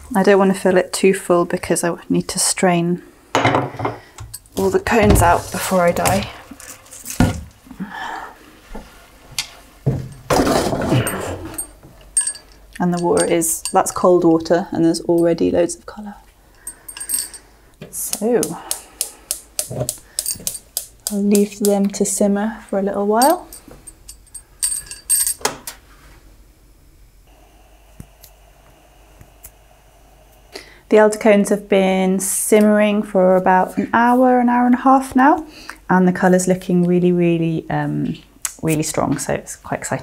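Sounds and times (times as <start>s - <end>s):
steady mechanical hum: 0.0s - 40.0s
metal pot scraping and clattering: 10.0s - 14.2s.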